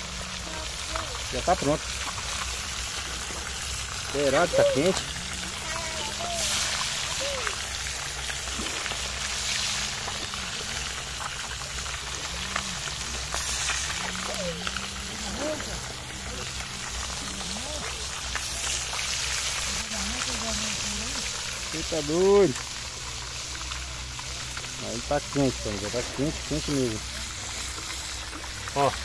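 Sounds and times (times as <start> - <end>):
oil sizzling and crackling: 0.0 - 29.0.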